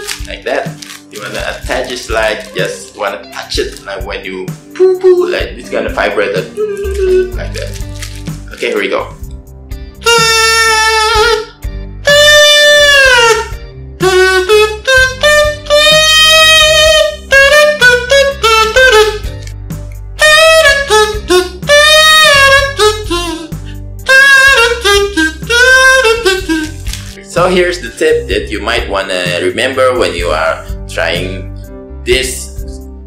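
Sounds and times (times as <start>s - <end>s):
comb kazoo buzzy tune: 6.4s - 7.8s, 10.0s - 19.4s, 20.2s - 27.2s.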